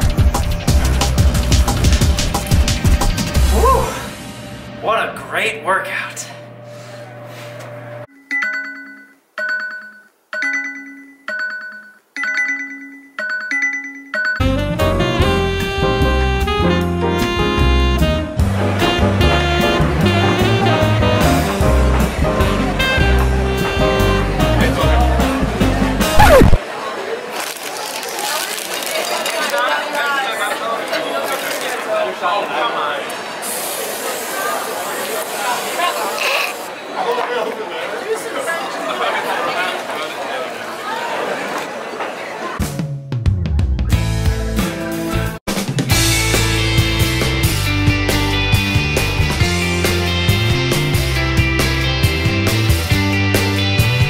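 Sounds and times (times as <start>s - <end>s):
faint voices: 22.3s - 42.6s
steady hiss: 33.3s - 36.7s.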